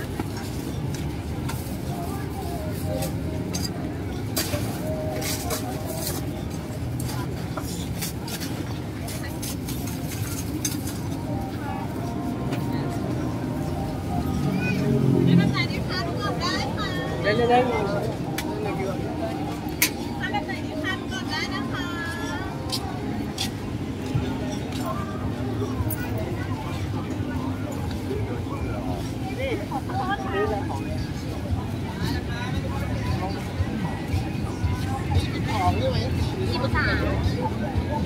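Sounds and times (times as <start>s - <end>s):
chatter of many people: 0.0s - 38.0s
voices talking: 0.0s - 38.0s.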